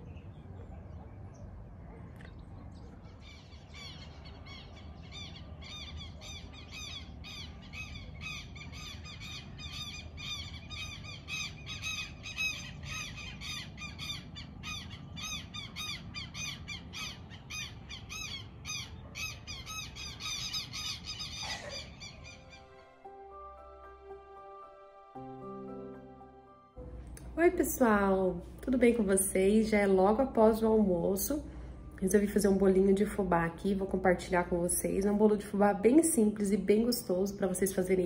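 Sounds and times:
low outdoor rumble: 0:00.0 - 0:22.6, 0:26.8 - 0:38.0.

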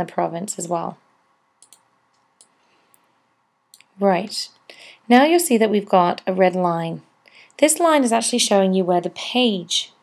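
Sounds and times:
faint computer mouse clicks: 0:01.6 - 0:03.1.

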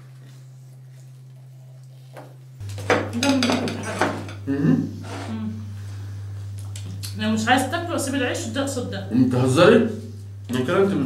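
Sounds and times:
dishes clinking and clattering: 0:02.9 - 0:04.4.

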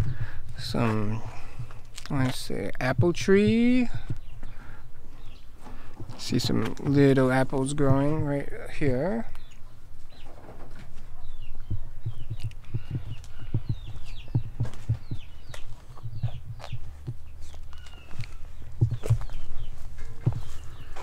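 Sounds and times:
small birds chirping: 0:00.0 - 0:21.0
footsteps on dirt path: 0:05.2 - 0:08.4, 0:10.9 - 0:21.0.

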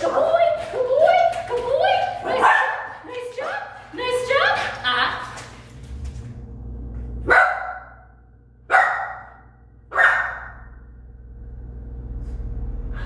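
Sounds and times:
young dog barking: 0:07.3 - 0:07.9, 0:08.7 - 0:10.5.

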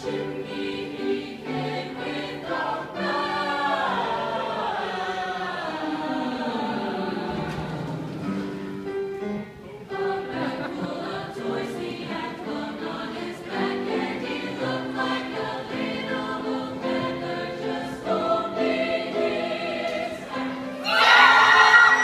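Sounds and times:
mixed choir singing held notes: 0:00.0 - 0:22.0.

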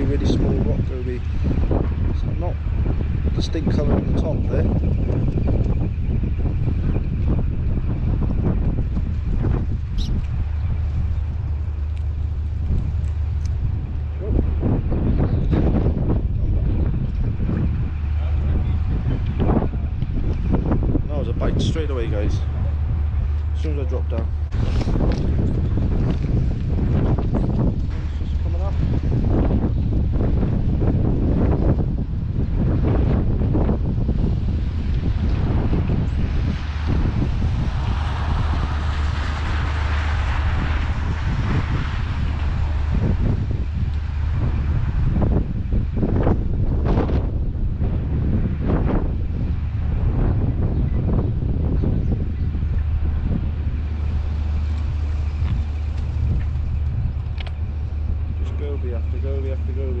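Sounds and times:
gusty wind buffeting microphone: 0:00.0 - 1:00.0.

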